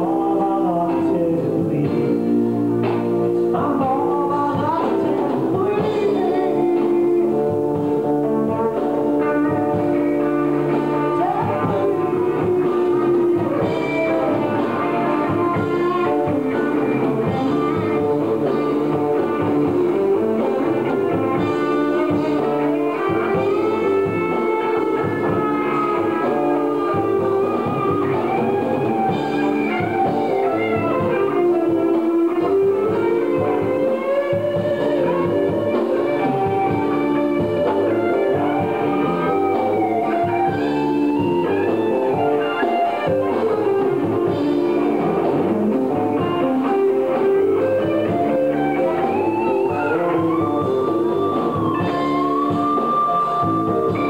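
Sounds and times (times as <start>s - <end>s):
electric guitar: 0.0s - 54.0s
live rock band playing: 0.0s - 54.0s.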